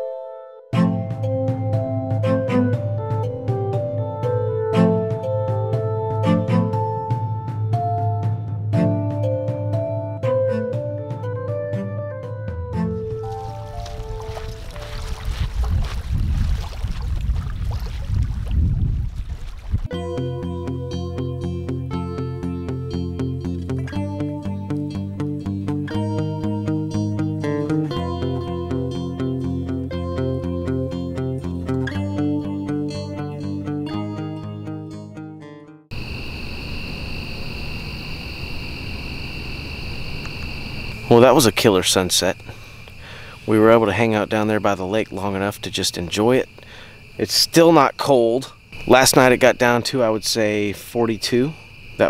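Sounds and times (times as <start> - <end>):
keyboard background music: 0.0 - 15.5, 19.9 - 35.9
insects chirping shrilly: 13.1 - 15.6, 35.9 - 52.0
water lapping against bank: 13.1 - 19.9
wind rumble on microphone: 13.3 - 19.9.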